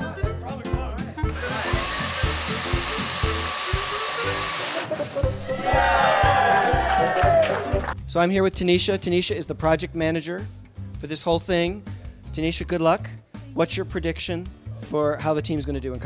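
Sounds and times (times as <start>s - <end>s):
music with steady beat: 0.0s - 4.6s
robot motors whirring: 1.3s - 5.2s
people cheering and shouting: 5.3s - 8.0s.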